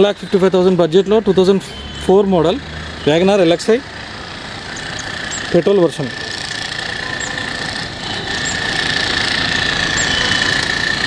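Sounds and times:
high-pitched whine: 4.5s - 11.0s.

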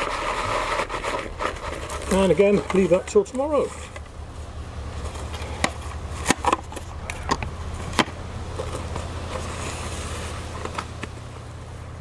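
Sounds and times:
plastic film rustling: 0.0s - 5.9s
cling film crinkling: 0.0s - 7.0s.

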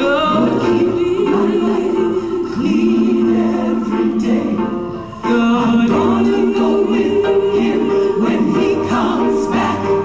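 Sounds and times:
choir voices: 0.0s - 10.0s.

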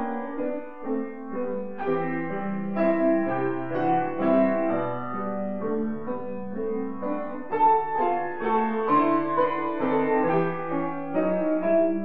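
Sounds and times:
grand piano: 0.0s - 12.0s.

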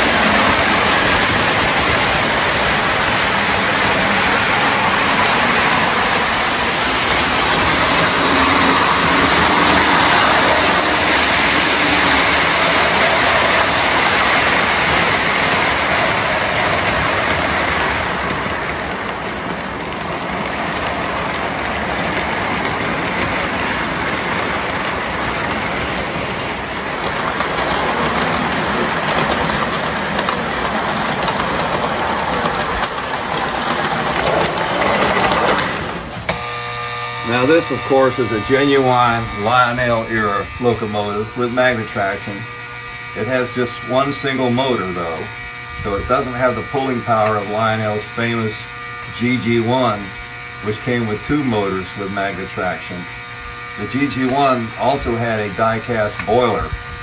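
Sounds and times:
toy train running on track: 0.0s - 57.0s.

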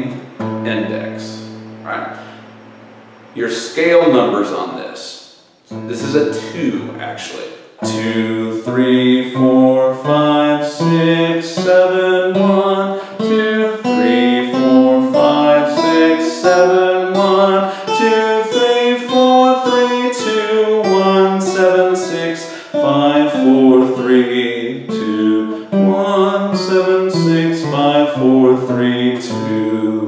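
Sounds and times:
acoustic guitar playing a scale: 0.0s - 4.9s, 5.5s - 30.0s
man singing: 7.8s - 30.0s.

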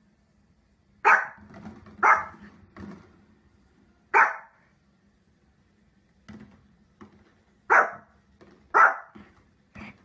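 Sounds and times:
small dog barking: 1.0s - 1.4s, 2.0s - 2.4s, 4.1s - 4.6s, 7.7s - 9.2s.

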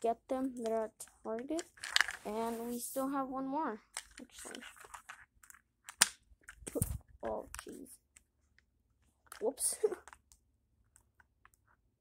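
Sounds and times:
packaging rustling: 1.6s - 2.3s.

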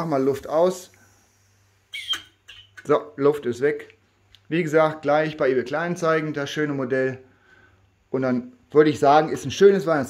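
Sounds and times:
compressed air hiss: 0.0s - 2.5s.

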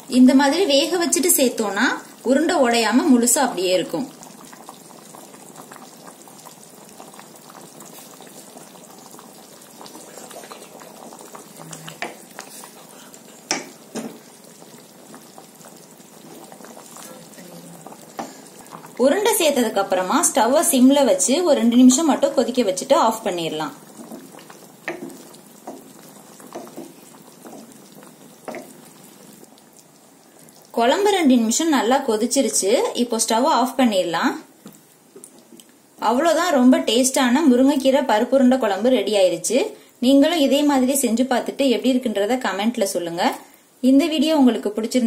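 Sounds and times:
thick gravy bubbling in a pan: 0.0s - 45.0s
wooden spatula stirring: 5.7s - 31.2s.

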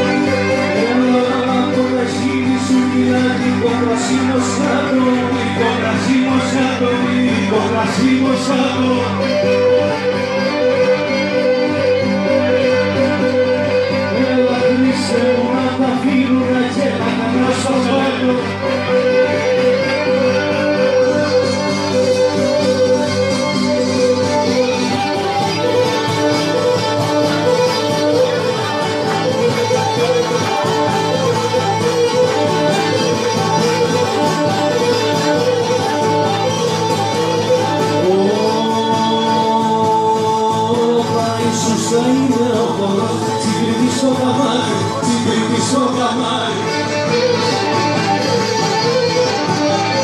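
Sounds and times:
bowed fiddle melody: 0.0s - 50.0s
plucked string instruments: 0.0s - 50.0s.

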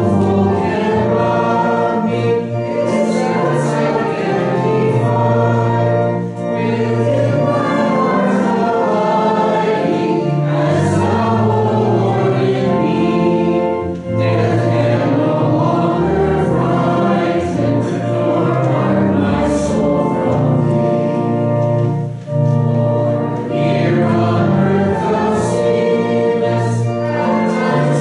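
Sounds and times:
congregation singing a hymn: 0.0s - 28.0s.

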